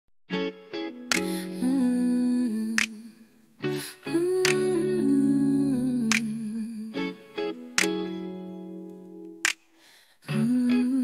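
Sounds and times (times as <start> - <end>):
plucked guitar: 0.3 - 9.5, 10.2 - 11.0.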